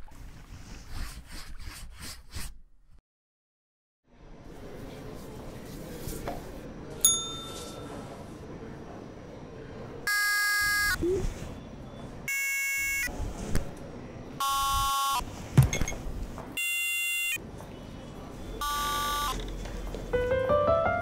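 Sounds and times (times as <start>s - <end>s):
electronic buzzer tones: 12.3s - 13.1s, 14.4s - 15.2s, 16.6s - 17.4s, 18.6s - 19.4s.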